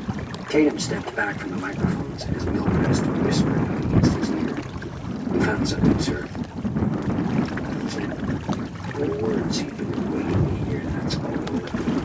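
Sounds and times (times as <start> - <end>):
boat low steady noise: 0.0 - 12.0.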